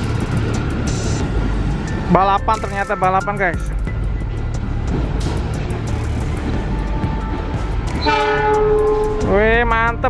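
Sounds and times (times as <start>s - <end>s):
low rumble of trains: 0.0s - 10.0s
train horn: 7.2s - 9.3s.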